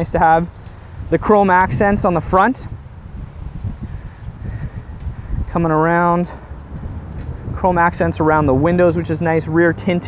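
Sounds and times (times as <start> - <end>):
wind rumble on microphone: 0.0 - 10.0
microphone handling noise: 0.6 - 5.6, 6.4 - 7.8.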